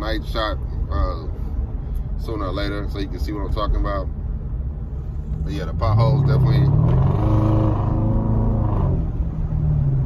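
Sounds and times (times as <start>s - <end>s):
car exhaust droning: 4.7s - 10.0s.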